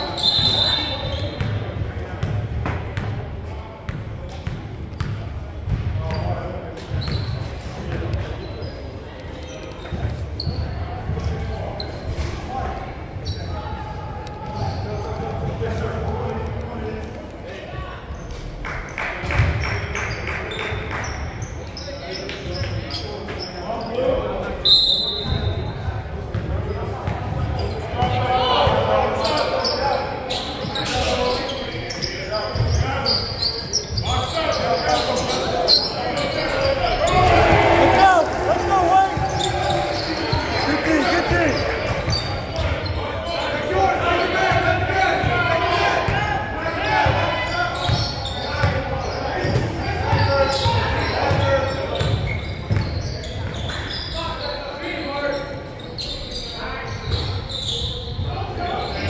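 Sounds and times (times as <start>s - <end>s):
high whistle: 0.1s - 1.1s, 24.6s - 25.5s
people calling out: 36.6s - 41.9s.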